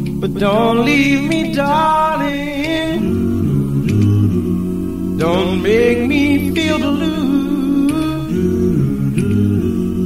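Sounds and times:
low bass vocal part: 0.0s - 10.0s
voices humming chords: 0.0s - 10.0s.

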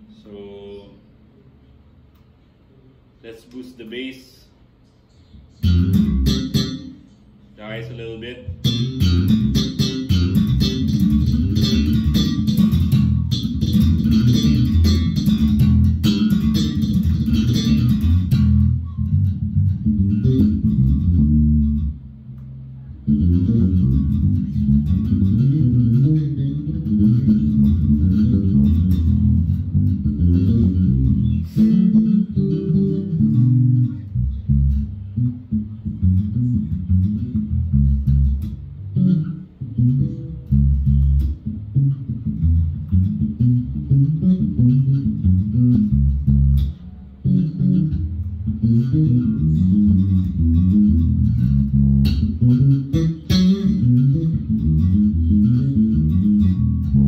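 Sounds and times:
electric bass played fingerstyle: 5.1s - 57.0s.

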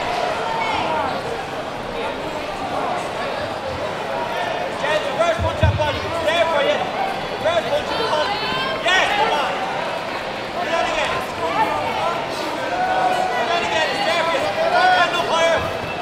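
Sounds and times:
sports hall background hum: 0.0s - 16.0s.

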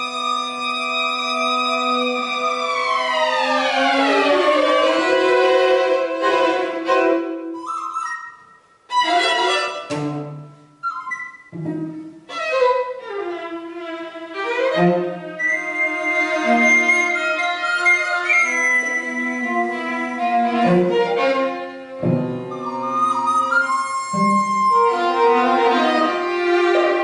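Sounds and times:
string quartet playing: 0.0s - 27.0s.

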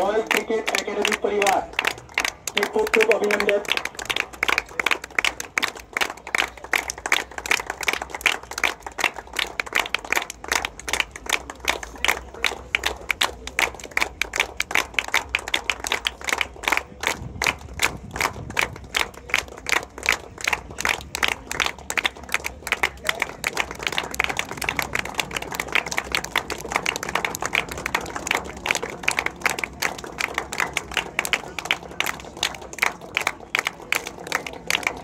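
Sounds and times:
people clapping: 0.0s - 35.0s.

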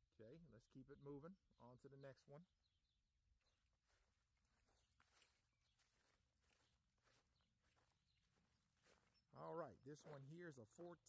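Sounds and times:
man speaking: 0.0s - 2.5s, 9.3s - 11.0s
faint footsteps on gravel: 3.4s - 11.0s.

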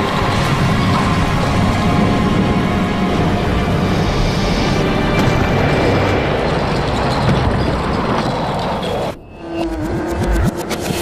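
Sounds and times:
stone masonry collapsing rumble: 4.8s - 9.1s.

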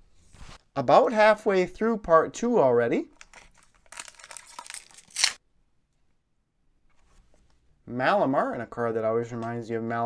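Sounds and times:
foil wrapper crinkling: 3.2s - 5.4s
foil wrapper ripping: 3.3s - 5.4s.

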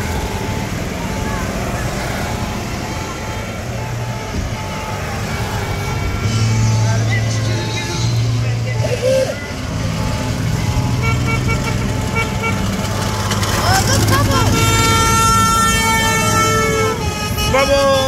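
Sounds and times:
people calling out: 0.0s - 10.1s, 13.4s - 18.0s
golf cart motor hum: 7.8s - 18.0s.

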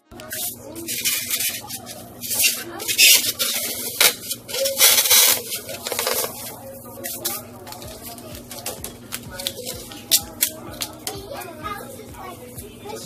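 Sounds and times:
foam scraping in tin bucket: 0.3s - 6.4s.

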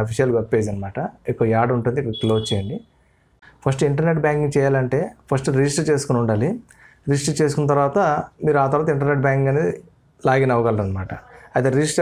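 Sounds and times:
man talking: 0.0s - 2.9s, 3.6s - 12.0s.

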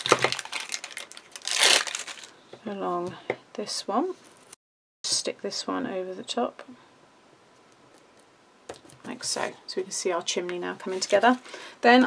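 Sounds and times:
tape ripping: 0.0s - 2.3s
tape backing crackling: 0.0s - 2.4s.

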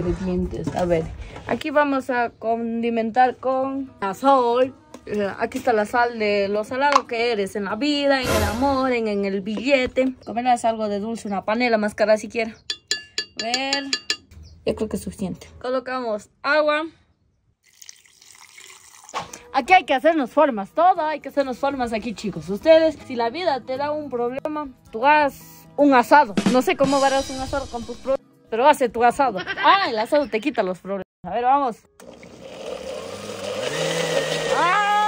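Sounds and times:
water pouring into blender: 17.6s - 19.4s, 32.0s - 35.0s.

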